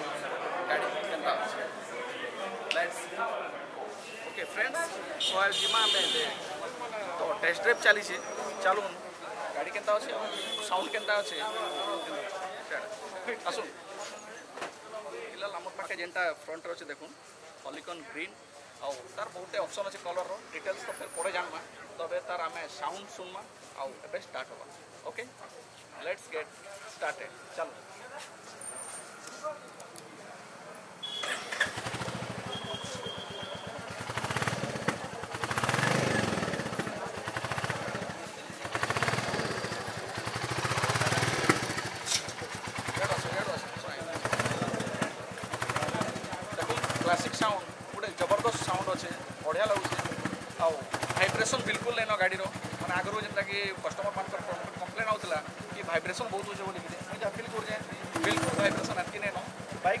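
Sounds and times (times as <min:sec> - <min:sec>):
voices: 0:00.0 - 1:00.0
motorcycle engine running: 0:31.0 - 1:00.0.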